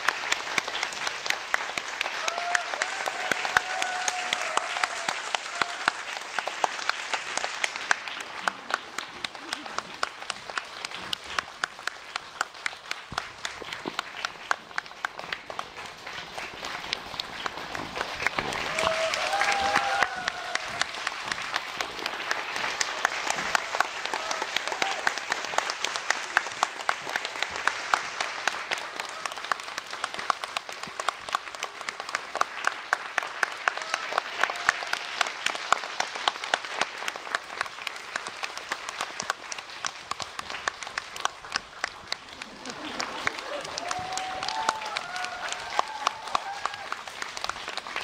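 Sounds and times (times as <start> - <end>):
audience applauding: 0.0 - 48.0.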